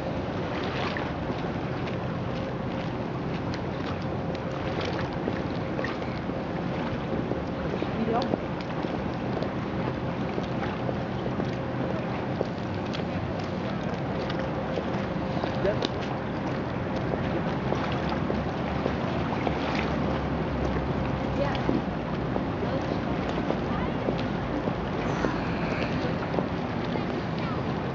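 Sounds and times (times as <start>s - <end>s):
wind on microphone: 4.0s - 27.9s
low even drone: 8.6s - 27.9s
faint voices: 22.6s - 27.9s.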